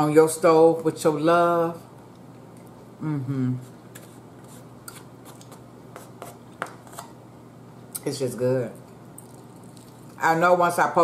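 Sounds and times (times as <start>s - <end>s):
person chewing: 9.2s - 10.2s.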